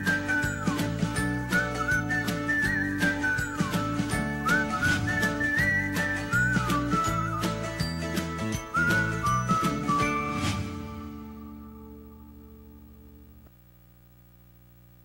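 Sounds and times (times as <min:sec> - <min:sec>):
whistled tune: 0:00.0 - 0:11.0.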